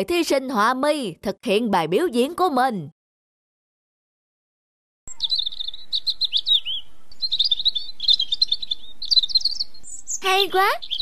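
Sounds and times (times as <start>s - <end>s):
songbird chirping warble: 5.1s - 11.0s.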